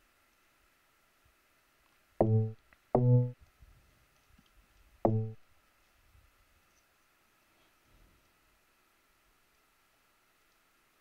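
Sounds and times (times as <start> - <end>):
short low synthesizer notes: 2.2 - 3.4, 5.1 - 5.4.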